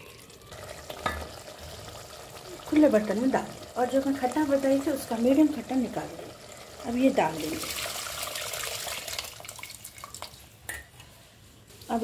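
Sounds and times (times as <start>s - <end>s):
liquid pouring into pot: 0.0s - 10.5s
small clicks and drips: 9.2s - 11.2s.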